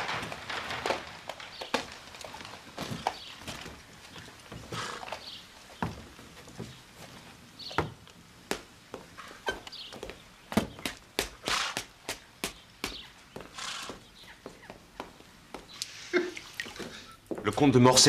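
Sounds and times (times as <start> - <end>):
horse hooves on stone paving: 0.0 - 15.9
footsteps on stone paving: 0.0 - 16.0, 16.6 - 18.0
hissing sounds: 11.4 - 12.2, 13.5 - 14.0.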